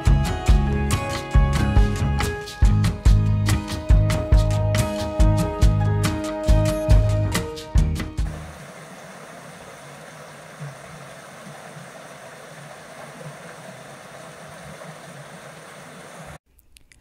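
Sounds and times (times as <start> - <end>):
stream water rushing: 8.3 - 16.4.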